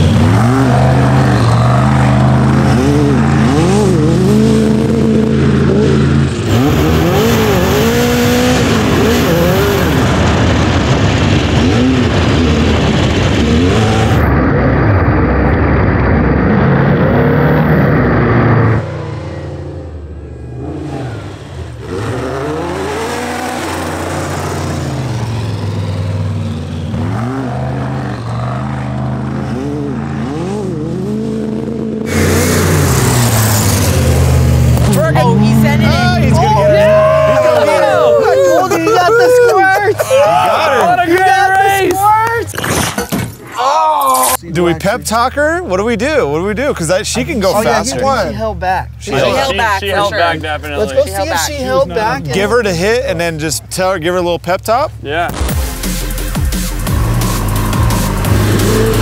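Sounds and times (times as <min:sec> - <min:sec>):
off-road engines revving: 0:00.0 - 0:59.0.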